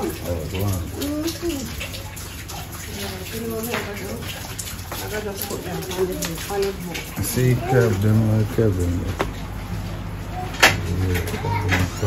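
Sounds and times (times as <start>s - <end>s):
person speaking: 5.5s - 9.3s.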